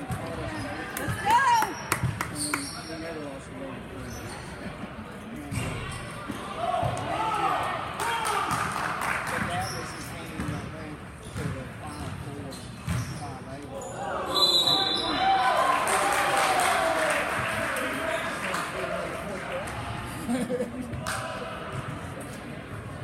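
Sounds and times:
people shouting and chattering: 0.0 - 10.0.

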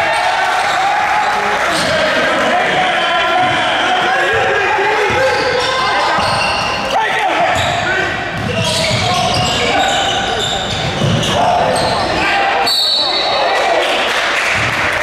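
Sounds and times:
voices in gym: 0.0 - 15.0
sneakers squeaking: 1.6 - 2.0, 3.2 - 13.5.

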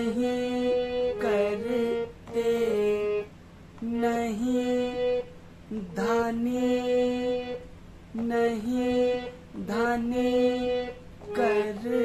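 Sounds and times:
harmonium playing slow melody: 0.0 - 3.3, 3.9 - 5.4, 6.7 - 7.6, 8.8 - 9.4, 10.2 - 12.0.

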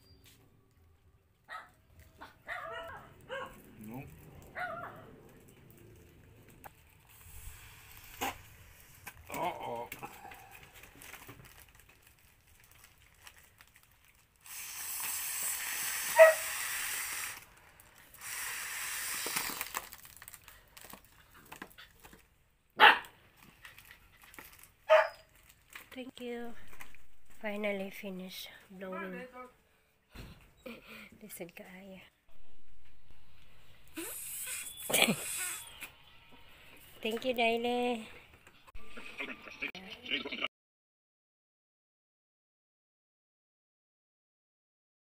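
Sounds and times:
dog barking and yipping: 1.5 - 3.6, 4.5 - 5.1, 16.1 - 16.6, 22.8 - 23.2, 24.9 - 25.3
foil crinkling: 3.2 - 22.3, 23.3 - 27.6
person blowing up a balloon: 7.1 - 9.1, 14.4 - 20.2, 33.9 - 35.9
breathy blows: 14.4 - 20.6, 33.8 - 35.8.

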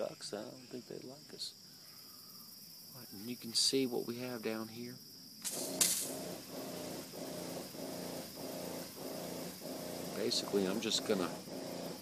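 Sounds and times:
spray hiss: 5.4 - 12.0
pulsing pump hum: 5.5 - 12.0.

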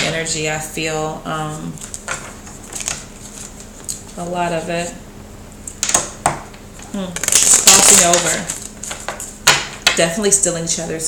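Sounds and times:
cards rustling and snapping: 1.8 - 4.2, 7.2 - 9.7.

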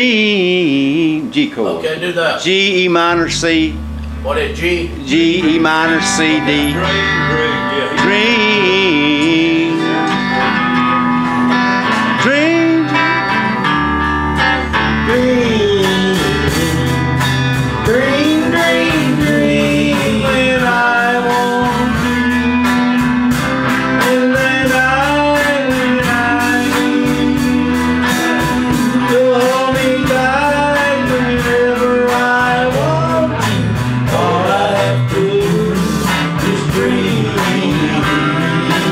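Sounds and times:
electric guitar: 0.0 - 1.4, 2.4 - 38.9
man singing: 0.0 - 1.6, 2.4 - 3.8, 4.5 - 11.0, 12.0 - 13.6, 14.8 - 38.9
acoustic guitar: 0.0 - 1.8, 2.5 - 38.9
drums beat: 3.1 - 38.9.

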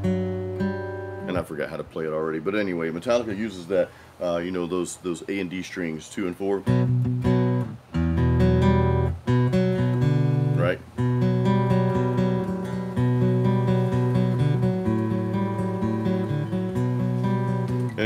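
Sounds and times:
acoustic guitar picked riff: 0.0 - 1.8, 6.6 - 18.0.

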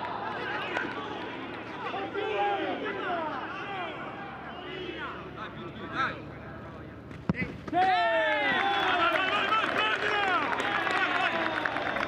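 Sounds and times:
players shouting in celebration: 0.0 - 5.3, 7.7 - 12.0
football kick knock: 7.1 - 7.8.

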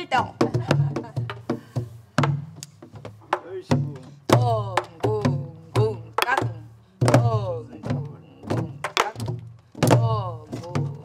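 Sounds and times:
barrel drums played together: 0.0 - 11.0.

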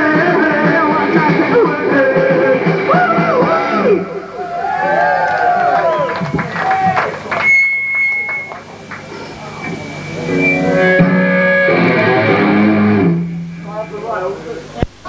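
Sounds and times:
electric guitar through amplifier: 0.0 - 15.0
voices: 0.2 - 11.0
thin high steady tone: 7.3 - 11.0.

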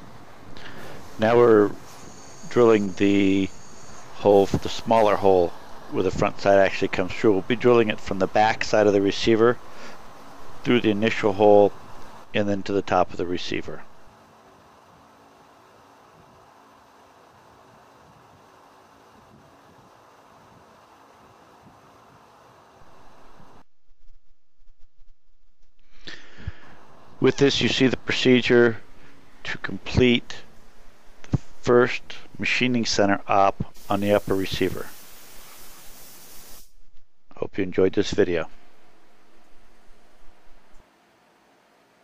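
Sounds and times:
high hiss of spray: 0.5 - 12.2, 33.7 - 36.8
coolant spraying: 33.7 - 36.7.

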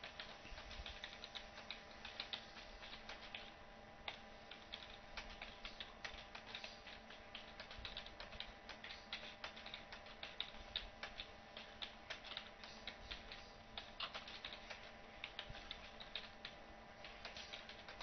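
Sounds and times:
keyboard typing: 0.0 - 18.0
low steady hum: 0.0 - 18.0.

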